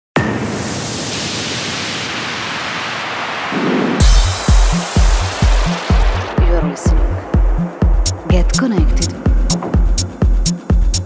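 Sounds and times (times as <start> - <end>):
hissing noise burst: 0.4 - 8.2
kick drum and bass: 4.0 - 11.0.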